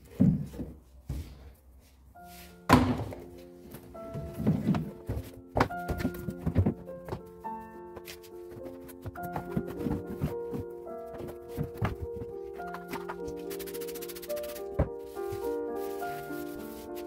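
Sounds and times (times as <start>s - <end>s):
background music with held notes: 0.0s - 17.0s
shoes dropping with thuds: 4.1s - 7.3s, 8.5s - 13.2s.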